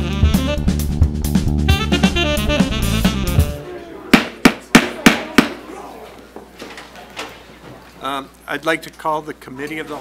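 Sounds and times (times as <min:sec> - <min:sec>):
wooden gavel rapping: 0:04.1 - 0:05.6.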